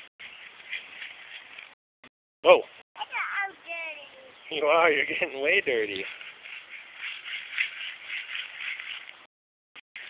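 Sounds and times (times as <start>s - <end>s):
hands scraping sand: 5.1s - 9.3s.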